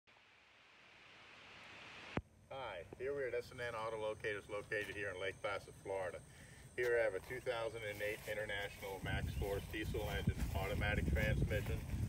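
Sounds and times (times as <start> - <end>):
faint steady hiss: 0.1 - 12.0.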